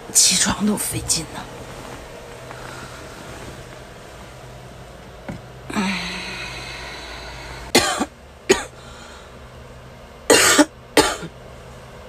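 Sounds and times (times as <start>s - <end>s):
woman coughing: 7.7s - 8.8s, 10.3s - 11.3s.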